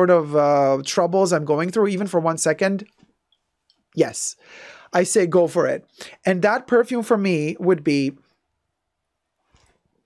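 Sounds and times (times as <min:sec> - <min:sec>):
person speaking: 0:00.0 - 0:03.0, 0:04.0 - 0:08.2.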